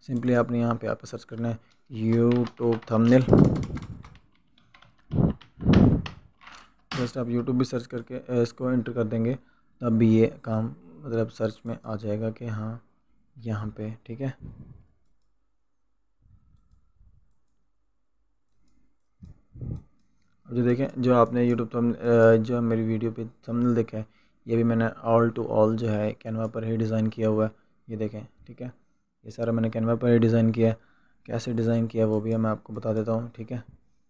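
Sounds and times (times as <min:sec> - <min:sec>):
typing on computer keyboard: 0:01.3 - 0:07.1
faint mouse clicks: 0:15.0 - 0:15.4.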